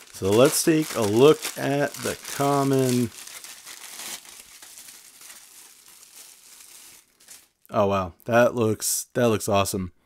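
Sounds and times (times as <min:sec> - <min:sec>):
plastic packaging crinkling: 0:00.0 - 0:07.7.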